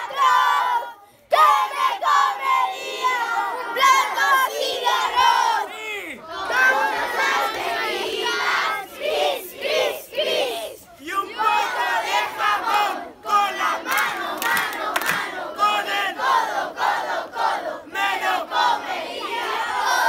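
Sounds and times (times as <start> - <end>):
crowd of young voices shouting: 0.0 - 20.0.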